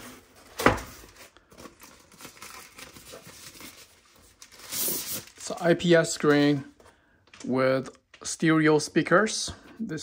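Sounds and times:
packaging rustling and crinkling: 0.0 - 6.7.

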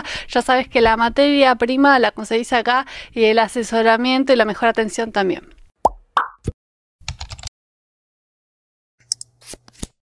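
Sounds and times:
blooping pop: 5.8 - 6.6.

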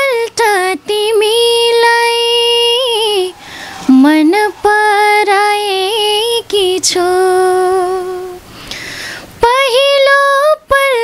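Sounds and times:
woman singing unaccompanied: 0.0 - 8.4, 9.4 - 11.0
woman taking a breath: 3.3 - 3.9, 8.5 - 9.3.

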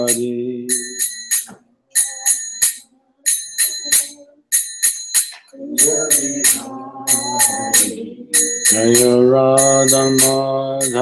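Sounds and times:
hand cymbals clashing: 0.0 - 11.0.

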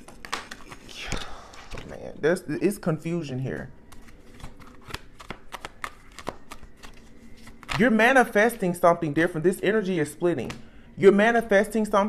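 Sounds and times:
cards being shuffled: 0.0 - 2.0, 3.9 - 7.9.

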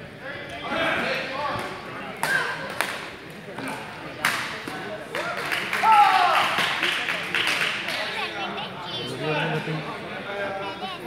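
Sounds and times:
loud shout: 5.8 - 6.6.

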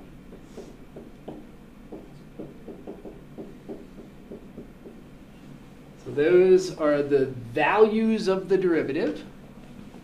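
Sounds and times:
stylus tapping on tablet screen: 0.3 - 5.0.

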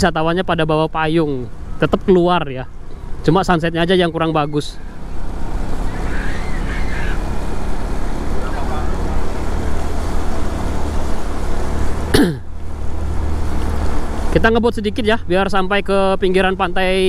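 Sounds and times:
motorbike engine and road rumble: 0.0 - 17.0.

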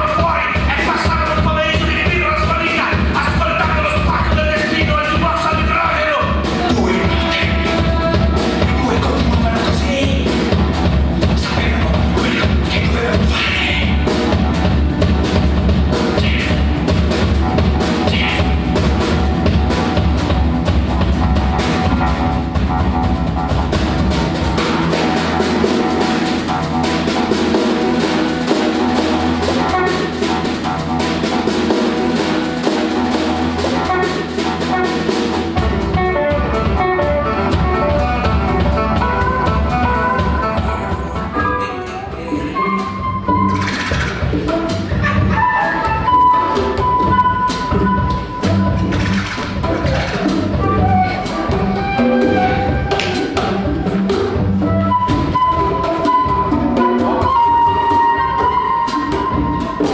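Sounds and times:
drums steady beat: 0.0 - 59.9
wind instrument melody: 1.3 - 11.2, 12.6 - 59.9
light percussion: 37.6 - 59.9.

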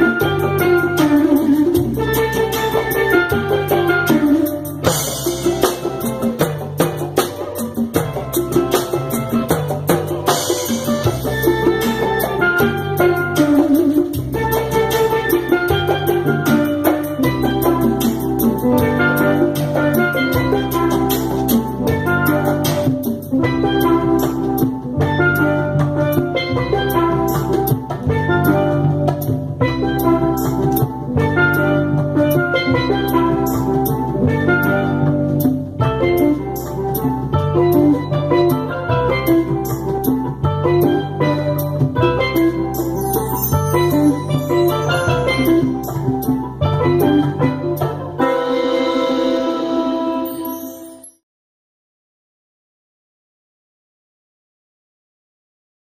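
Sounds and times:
congas and hand percussion: 0.0 - 51.1
steel pan melody: 0.0 - 51.2
electric guitar chords: 14.9 - 50.4.

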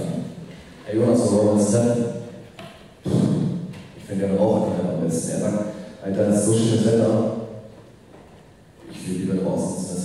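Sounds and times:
man's voice through microphone: 0.0 - 7.8, 8.8 - 10.0.

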